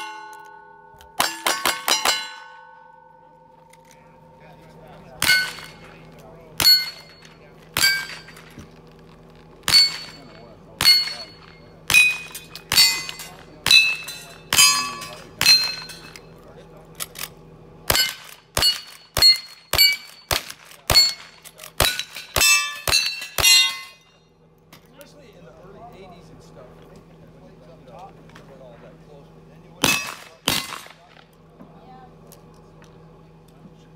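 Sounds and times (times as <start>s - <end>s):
steel target clanging: 0.0s - 3.8s, 5.1s - 8.8s, 9.6s - 16.4s, 17.9s - 24.2s, 29.8s - 31.3s.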